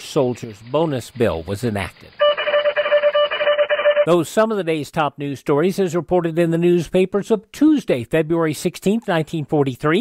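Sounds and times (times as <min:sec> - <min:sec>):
high electronic beeping tone: 0:02.2 - 0:04.2.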